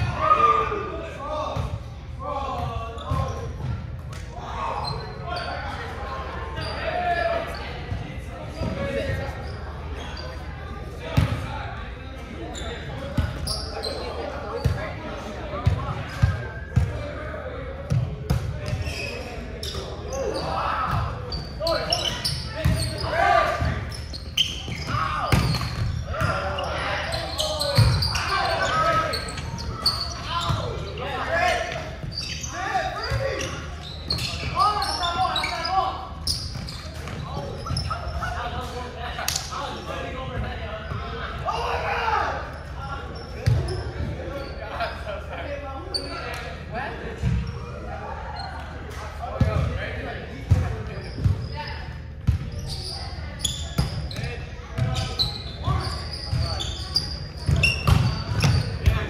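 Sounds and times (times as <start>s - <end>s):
players shouting and chattering: 0.0s - 59.0s.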